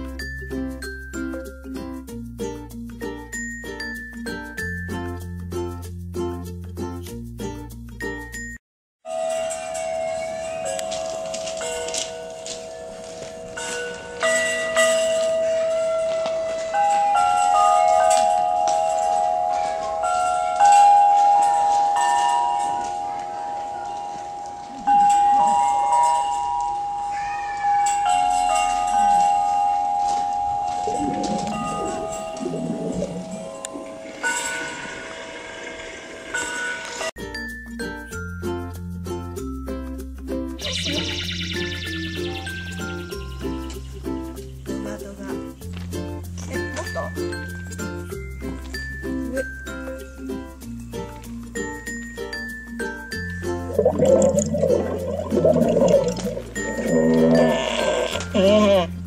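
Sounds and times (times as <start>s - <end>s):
plucked-string music: 0.0s - 8.5s, 29.9s - 34.2s, 41.9s - 59.0s
metal chime bars ringing: 53.7s - 58.7s.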